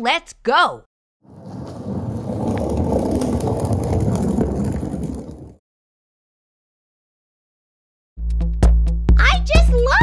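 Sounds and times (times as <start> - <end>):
low gritty rolling rumble: 1.2 - 5.6.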